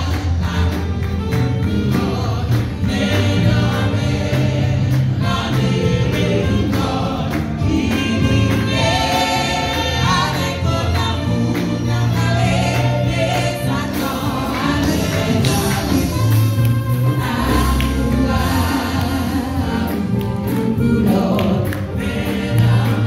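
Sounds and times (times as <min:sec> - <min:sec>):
group singing a hymn: 0:00.0 - 0:23.0
instrumental accompaniment with bass: 0:00.0 - 0:23.0.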